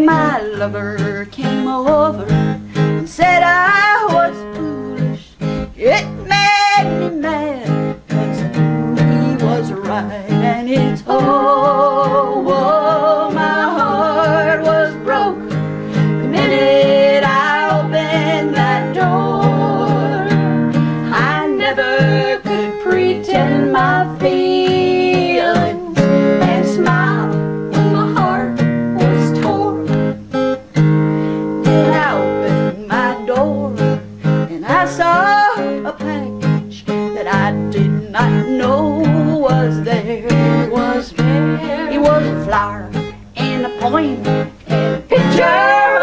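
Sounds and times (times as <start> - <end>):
women singing in harmony: 0.0 - 30.1, 31.6 - 46.0
acoustic guitar strumming: 0.0 - 46.0.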